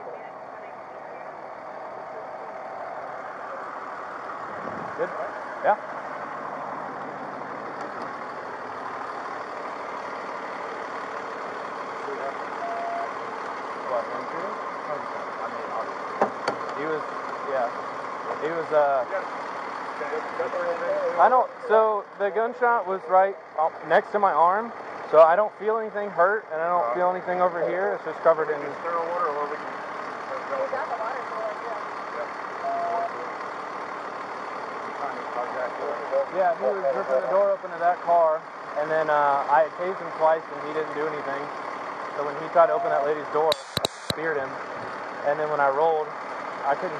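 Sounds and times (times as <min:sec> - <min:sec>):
faint voices: 0:00.0 - 0:04.1
diesel engine idling: 0:00.0 - 0:46.9
short beep: 0:12.6 - 0:13.1, 0:32.6 - 0:33.1.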